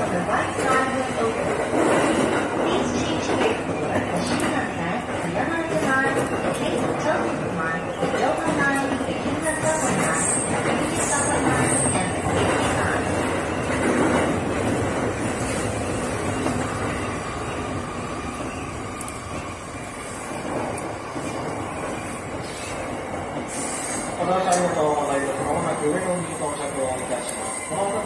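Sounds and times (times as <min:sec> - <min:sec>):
electric train running on rails: 0:00.0 - 0:28.0.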